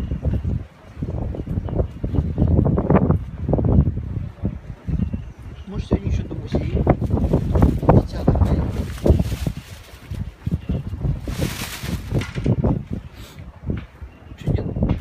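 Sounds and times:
wind rumbling on microphone: 0.0s - 15.0s.

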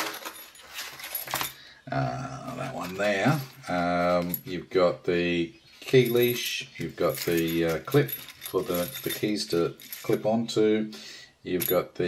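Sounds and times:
key jingling: 6.0s - 10.3s.

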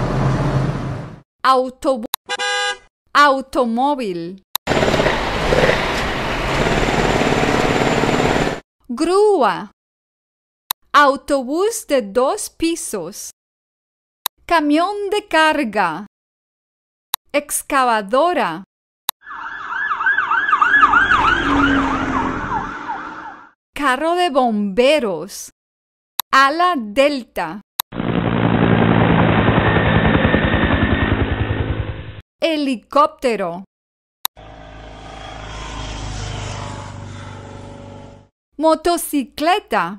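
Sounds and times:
engine hum: 0.0s - 1.2s, 34.4s - 38.3s
helicopter rotor blades chopping: 4.7s - 8.6s, 27.9s - 32.2s, 34.4s - 38.3s.

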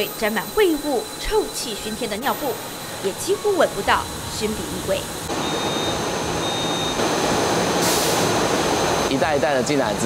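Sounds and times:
conveyor machinery running: 0.0s - 10.0s.

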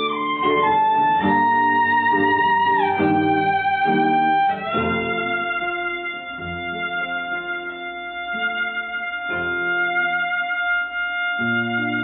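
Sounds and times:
classical guitar chords: 0.0s - 12.0s
violin holding long notes: 0.0s - 12.0s.

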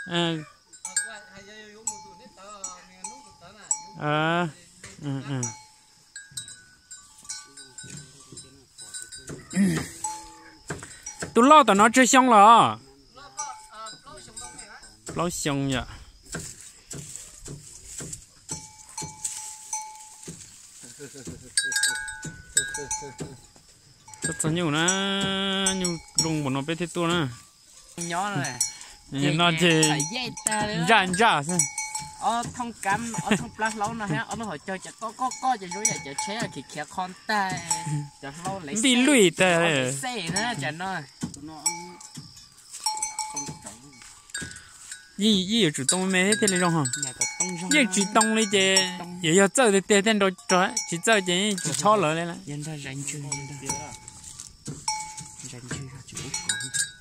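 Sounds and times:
bell-like ringing tones: 0.0s - 4.4s, 5.4s - 15.4s, 18.5s - 40.8s, 41.5s - 57.0s
cowbell clinking: 0.0s - 15.8s, 17.9s - 57.0s
person speaking: 28.0s - 40.9s, 45.2s - 54.0s.

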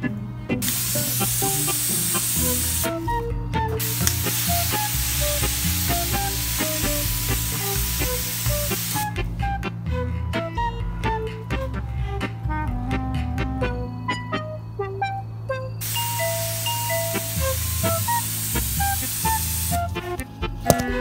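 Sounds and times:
guitar music: 0.0s - 21.0s
water mister hissing: 0.6s - 3.0s, 3.8s - 9.1s, 15.8s - 19.9s.

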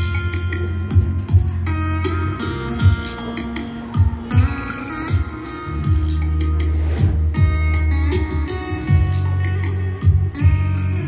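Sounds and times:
guitar music with bass and drums: 0.0s - 11.0s.

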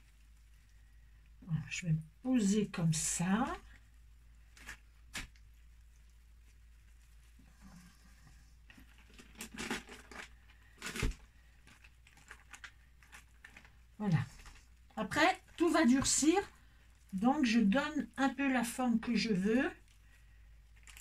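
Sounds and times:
cloth rustling and crinkling: 3.3s - 17.7s.

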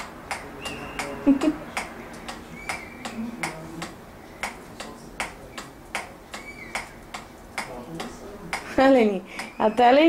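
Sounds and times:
sharp clicks: 0.0s - 8.7s.

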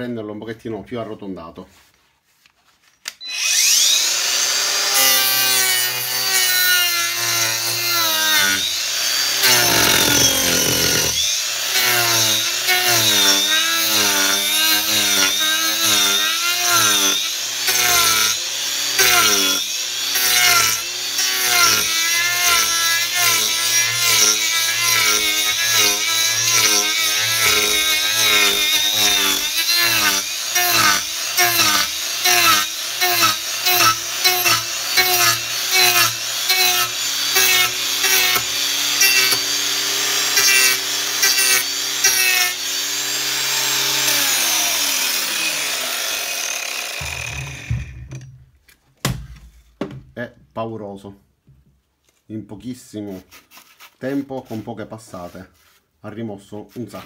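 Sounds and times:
angle grinder carving wood: 3.2s - 48.3s.

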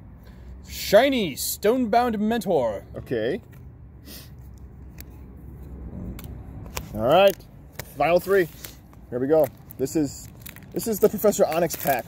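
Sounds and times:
trading cards clicking and rustling: 6.1s - 12.0s
foil pack crinkling: 8.2s - 12.0s.

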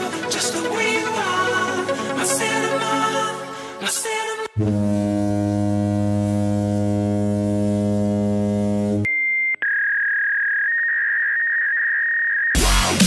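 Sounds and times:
low buzzy electronic tone: 4.6s - 9.1s.

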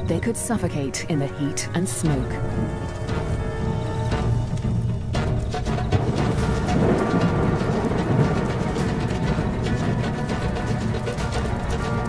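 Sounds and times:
music: 0.0s - 12.0s
grass fire burning: 2.5s - 12.0s.

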